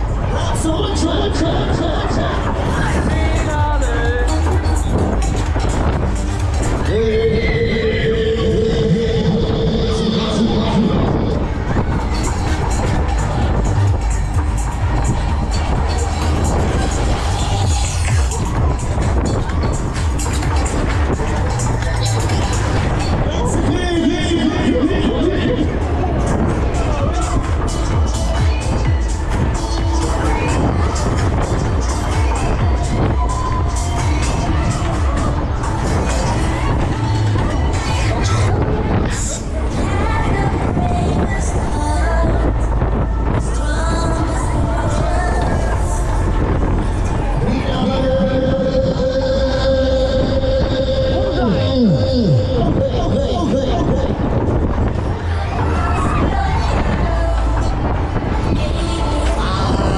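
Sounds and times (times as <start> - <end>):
fairground music with heavy bass: 0.0 - 59.9
spinning ride rumbling: 0.0 - 59.9
voices: 0.0 - 59.9.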